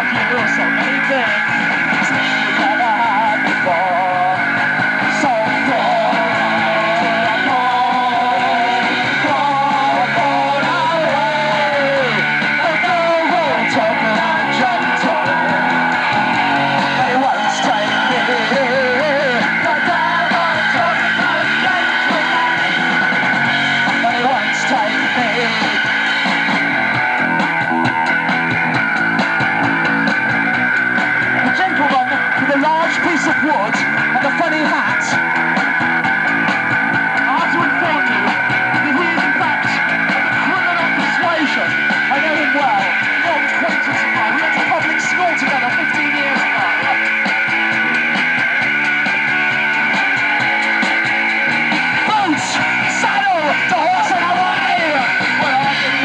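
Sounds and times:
live punk rock band: 0:00.0 - 0:56.0.

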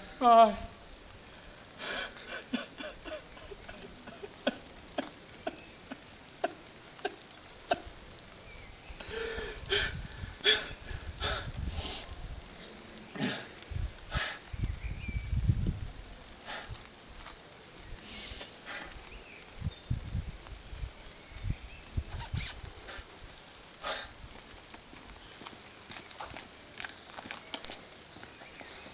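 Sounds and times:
footsteps on cobblestones: 0:23.1 - 0:28.9
man sniffling: 0:23.8 - 0:24.1.

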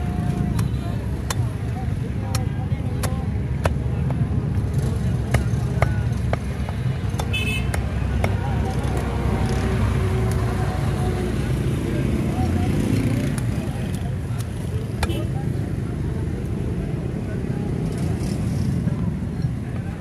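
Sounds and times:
sharp clicks and taps: 0:13.2 - 0:15.2.

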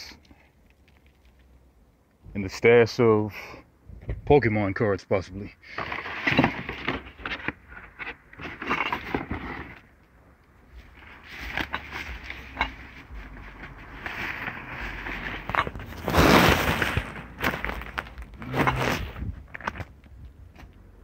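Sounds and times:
small knocks and scrapes: 0:05.7 - 0:20.8
plastic bags rustling: 0:13.2 - 0:19.8.

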